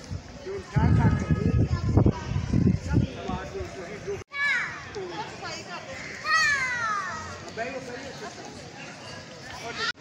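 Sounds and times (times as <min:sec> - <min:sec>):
children's voices outdoors: 0:00.0 - 0:10.0.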